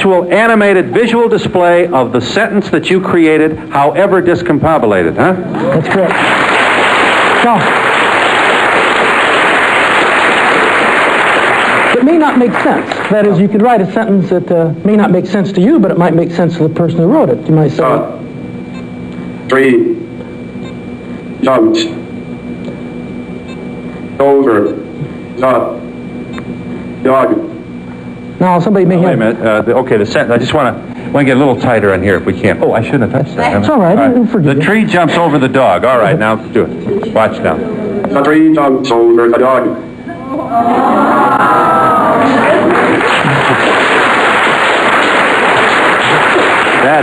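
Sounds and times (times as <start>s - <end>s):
low hum: 0.0s - 47.0s
audience applauding: 5.7s - 13.4s, 41.0s - 47.0s.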